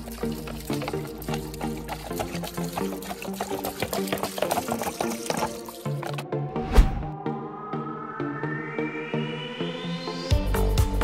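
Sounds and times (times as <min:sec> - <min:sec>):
soda pouring and splashing: 0:00.0 - 0:06.3
background music: 0:00.0 - 0:11.0.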